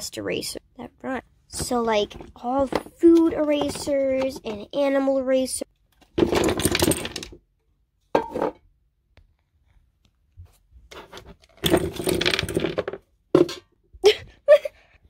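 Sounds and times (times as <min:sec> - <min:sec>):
erasers rattling in a container: 0:06.2 - 0:07.4, 0:11.5 - 0:12.8.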